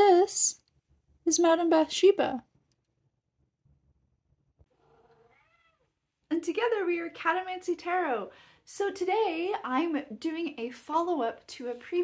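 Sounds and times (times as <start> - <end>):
cat meowing faintly: 4.7 - 6.0.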